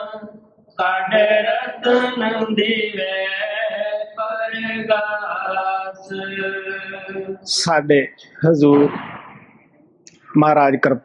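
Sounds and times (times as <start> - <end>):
man chanting a hymn: 0.0 - 9.0.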